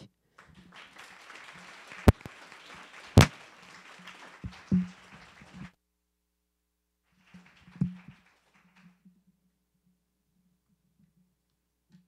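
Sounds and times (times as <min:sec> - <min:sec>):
audience applauding: 0:00.4 - 0:05.7, 0:07.1 - 0:09.0.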